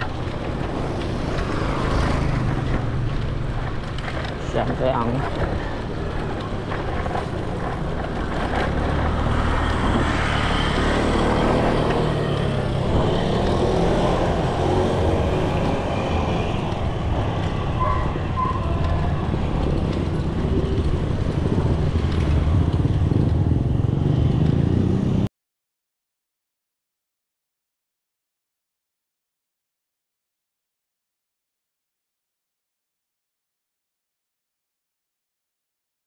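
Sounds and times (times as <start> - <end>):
bike road rumble: 0.0 - 25.3
car passing: 0.0 - 25.3
wind on camera: 0.0 - 25.3.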